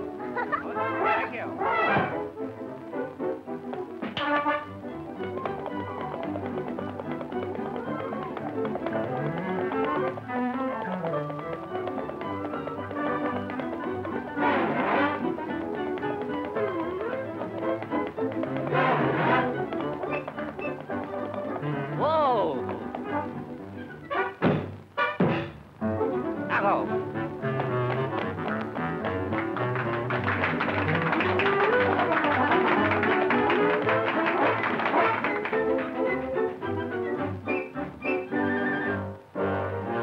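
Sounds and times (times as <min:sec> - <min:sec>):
orchestral cartoon music: 0:00.0 - 0:40.0
tapping percussion: 0:03.6 - 0:23.6, 0:26.8 - 0:36.8.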